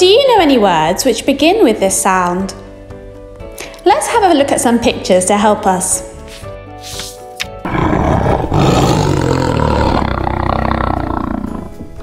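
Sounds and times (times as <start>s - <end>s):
background music: 0.0s - 12.0s
tiger roaring: 7.6s - 12.0s.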